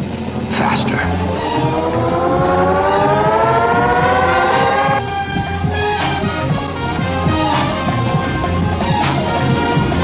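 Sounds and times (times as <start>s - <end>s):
low steady pulse: 0.0s - 6.8s
rising synthesized tone: 0.5s - 6.3s.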